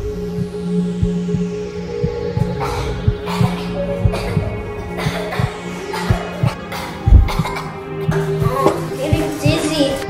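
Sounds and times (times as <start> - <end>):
heartbeat-like throbbing pulse: 0.0 - 9.8
low drone: 0.0 - 10.0.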